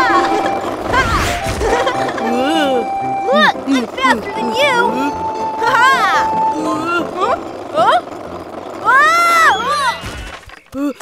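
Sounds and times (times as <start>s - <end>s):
children's background music: 0.0s - 10.1s.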